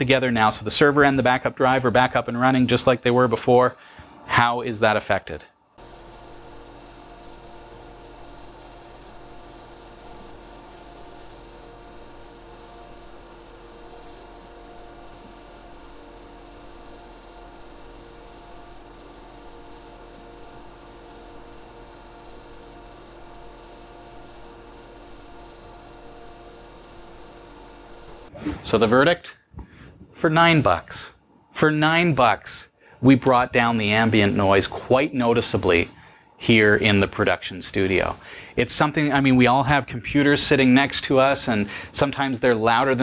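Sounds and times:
server hum and fan whir: 0.0 - 43.0.

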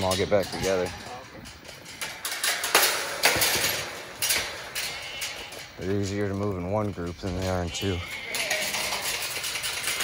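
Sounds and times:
steel gate rattling and clattering: 0.0 - 10.0.

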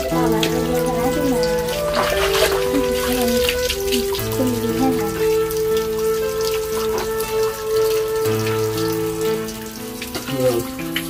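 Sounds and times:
slow melodic background music: 0.0 - 11.0
water splashing from basin: 0.0 - 11.0.

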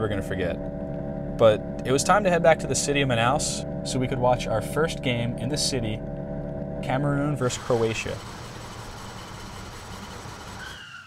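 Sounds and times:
faint whine: 0.0 - 10.4.

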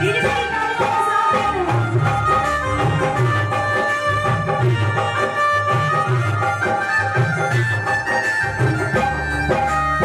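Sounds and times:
devotional instrumental melody: 0.0 - 10.0
tabla: 0.0 - 10.0.

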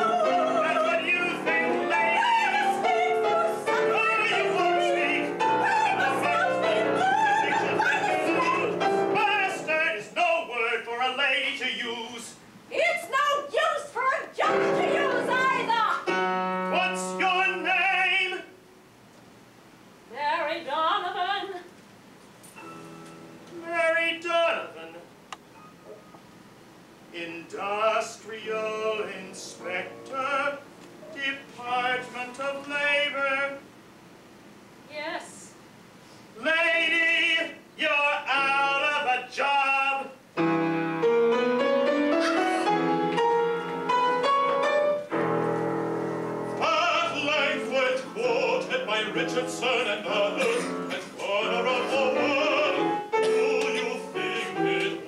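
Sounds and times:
woman singing operatically: 0.0 - 10.0, 12.7 - 16.2, 20.1 - 21.7
piano accompaniment: 0.0 - 10.4, 14.4 - 18.2, 22.6 - 23.9, 27.7 - 33.2, 40.4 - 55.0
operatic voice singing: 0.0 - 12.4, 46.6 - 55.0.

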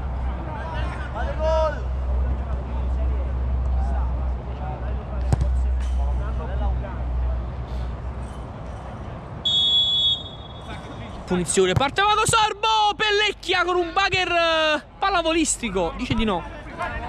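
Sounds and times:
referee's whistle blast: 9.4 - 10.7.

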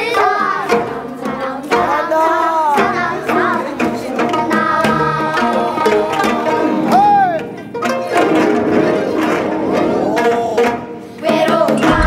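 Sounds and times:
girl singing with pitch slides: 0.0 - 7.4, 11.2 - 12.0
sharp drum strokes: 11.7 - 12.0.

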